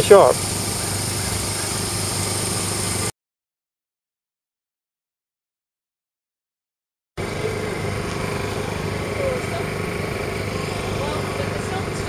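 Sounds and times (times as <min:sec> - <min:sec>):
machine running steadily: 0:00.0 - 0:03.1, 0:07.2 - 0:12.0
faint voices: 0:07.2 - 0:12.0.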